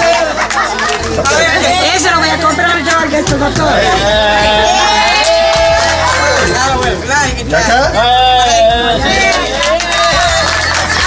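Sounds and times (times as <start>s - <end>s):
background music with bass: 0.0s - 11.0s
crowd chatting: 0.0s - 11.0s.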